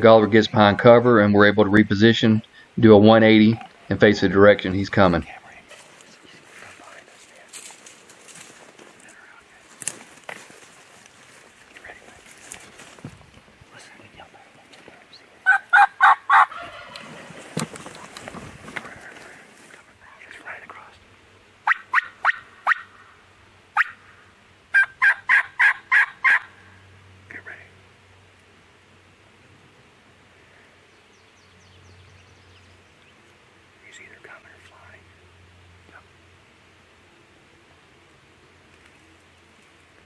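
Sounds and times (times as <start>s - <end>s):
rustle: 0.0s - 40.0s
turkey yelping: 15.4s - 17.2s, 21.6s - 23.1s, 23.8s - 24.1s, 24.7s - 26.6s.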